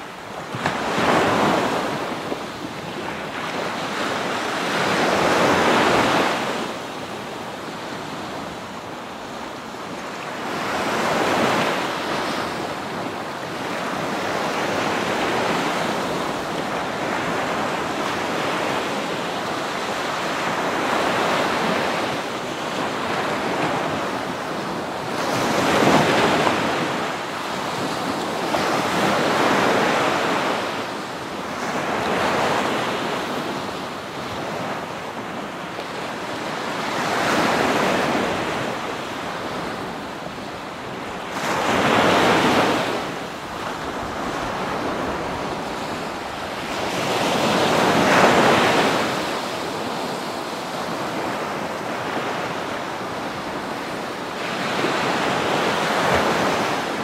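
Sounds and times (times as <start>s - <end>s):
ocean waves breaking: 0.0s - 57.0s.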